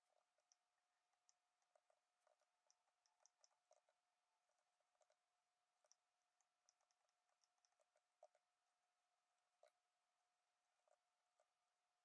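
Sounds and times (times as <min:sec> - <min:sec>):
faint clicks: 0:00.0 - 0:09.9.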